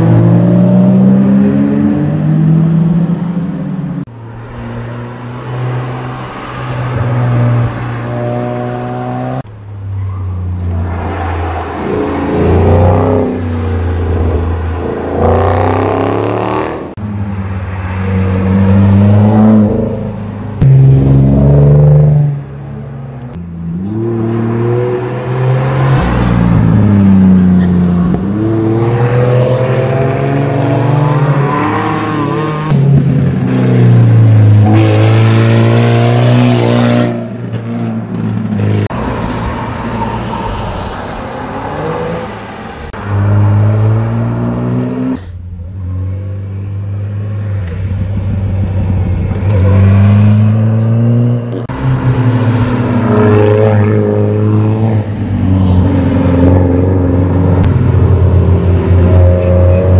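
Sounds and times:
car engines revving: 0:00.0 - 0:59.9.

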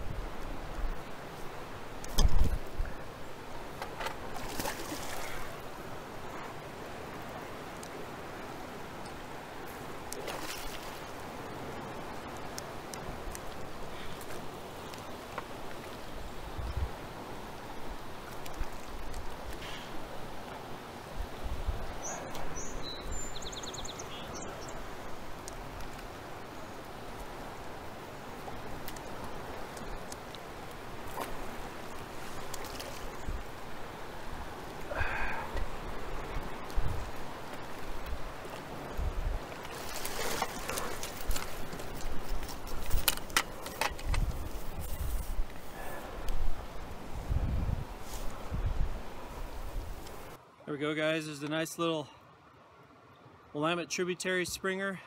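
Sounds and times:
river current rushing: 0:00.0 - 0:54.2.

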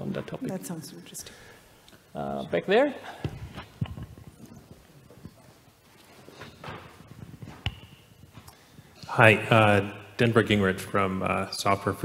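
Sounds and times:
microphone handling noise: 0:03.2 - 0:05.4, 0:06.4 - 0:09.0.

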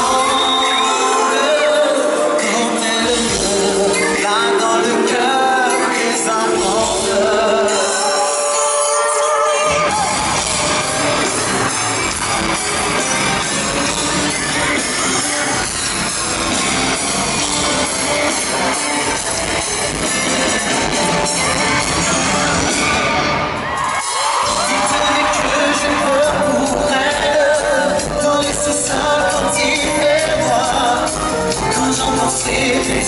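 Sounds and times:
bass: 0:00.0 - 0:01.8, 0:02.5 - 0:08.2, 0:09.7 - 0:33.0
live pop concert music: 0:00.0 - 0:33.0.

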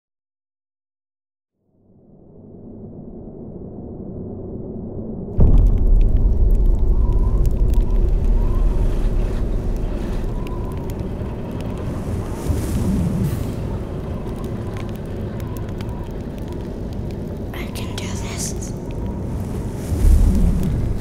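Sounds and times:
deep low boom and rumble: 0:02.6 - 0:18.1, 0:18.8 - 0:21.0.

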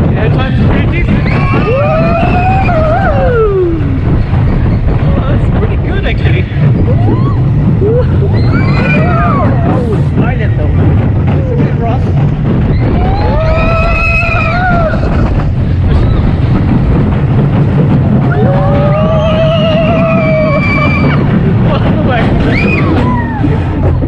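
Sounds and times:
roller coaster rumbling on track: 0:00.0 - 0:24.0
wind buffeting microphone: 0:00.0 - 0:24.0
riders screaming: 0:01.1 - 0:05.2, 0:06.8 - 0:10.0, 0:12.6 - 0:16.5, 0:18.2 - 0:21.5, 0:22.2 - 0:23.8.

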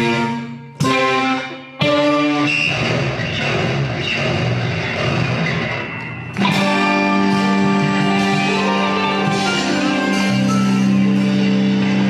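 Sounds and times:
jazz fusion band playing: 0:00.0 - 0:02.6, 0:06.4 - 0:12.0.

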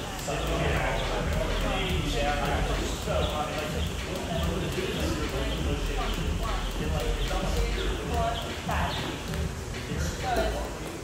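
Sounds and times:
jump rope ticking on floor: 0:00.2 - 0:11.0.

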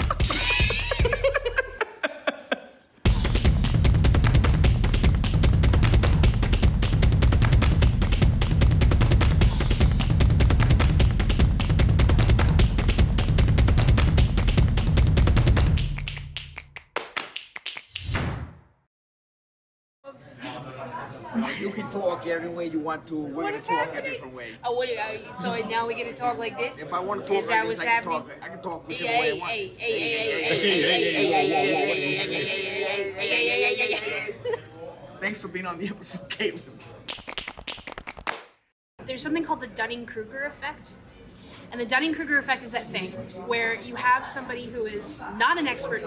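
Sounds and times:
intro theme music: 0:03.1 - 0:16.0.

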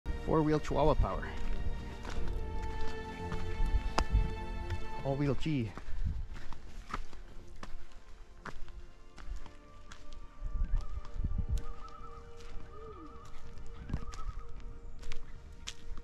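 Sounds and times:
loons warbling tremolo calls: 0:11.6 - 0:14.7.

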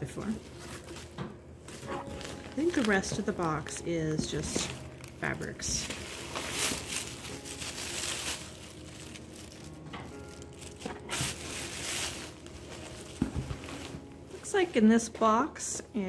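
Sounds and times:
fabric and plastic bag rustling: 0:00.0 - 0:15.8.

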